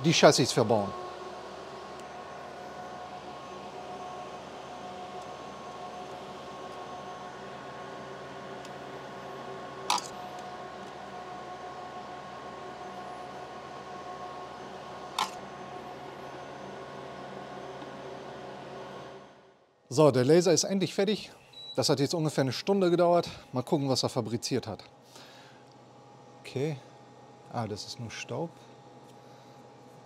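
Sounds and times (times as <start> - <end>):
laser cutter humming: 0.0 - 19.5.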